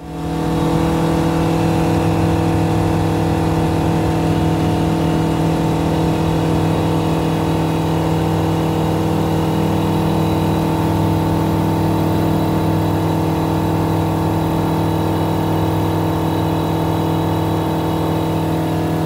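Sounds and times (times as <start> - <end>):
aircraft engine and propeller: 0.0 - 19.0.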